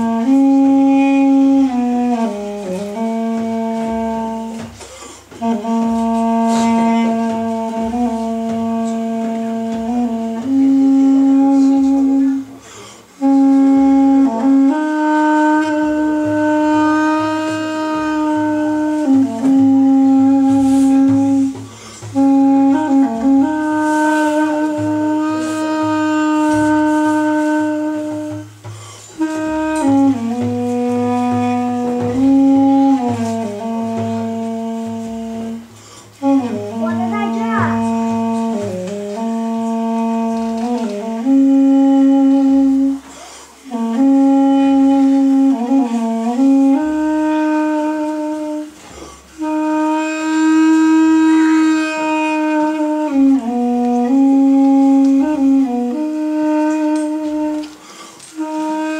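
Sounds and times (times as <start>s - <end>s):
duduk playing slow melody: 0.0s - 58.9s.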